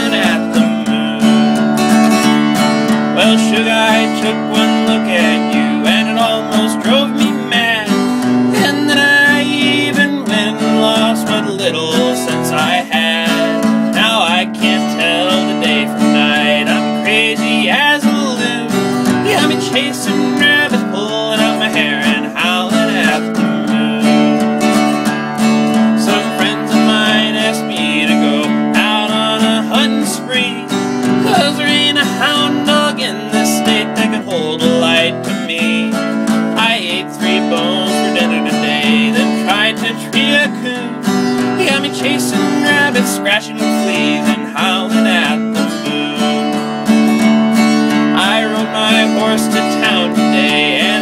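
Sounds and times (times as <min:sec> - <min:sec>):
acoustic guitar strumming: 0:00.0 - 0:51.0
sliding melodic lead: 0:00.0 - 0:51.0.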